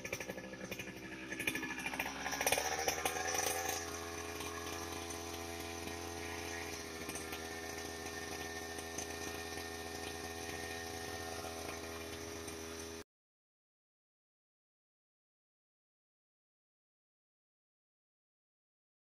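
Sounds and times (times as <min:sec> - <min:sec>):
brush cutter engine revving: 0:00.0 - 0:13.0.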